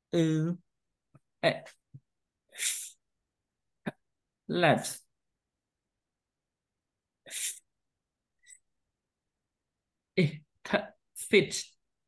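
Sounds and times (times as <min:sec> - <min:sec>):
breathy hiss from mouth: 0:07.3 - 0:07.6.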